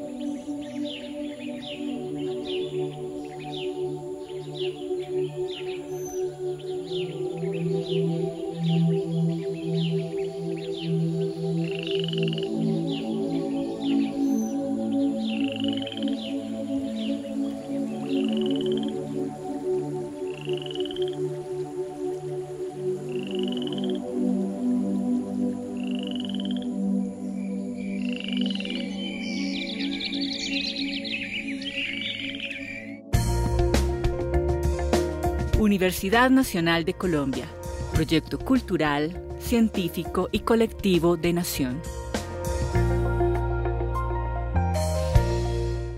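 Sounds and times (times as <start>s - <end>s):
soft ambient music: 0.0s - 45.9s.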